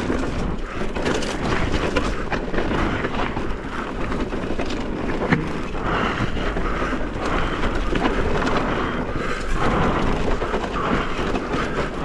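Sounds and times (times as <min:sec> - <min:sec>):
bike tyres rumbling on gravel: 0:00.0 - 0:12.0.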